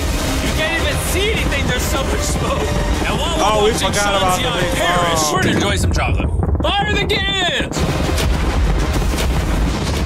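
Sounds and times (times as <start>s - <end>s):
cannons firing: 0.0s - 10.0s.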